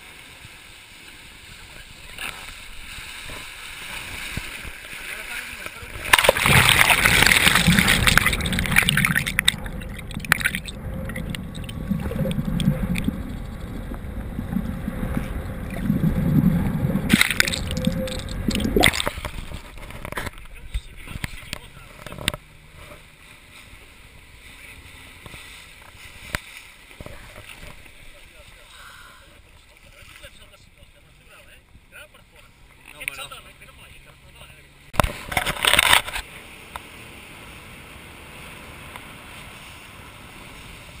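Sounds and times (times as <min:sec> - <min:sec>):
sea water rushing and splashing: 0:00.0 - 0:31.5, 0:32.4 - 0:41.0
water lapping: 0:00.0 - 0:41.0
muffled underwater gurgling: 0:05.8 - 0:22.4.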